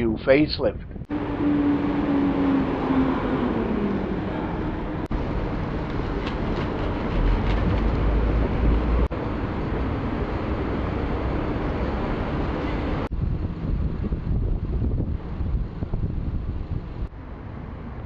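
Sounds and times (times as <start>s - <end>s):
deep rumble: 0.7s - 18.0s
city street traffic: 0.9s - 18.0s
vehicle passing: 1.1s - 13.8s.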